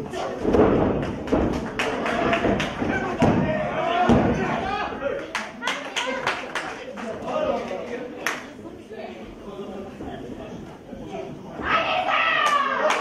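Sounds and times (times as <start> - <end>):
people shouting: 2.8 - 5.2, 11.6 - 13.0.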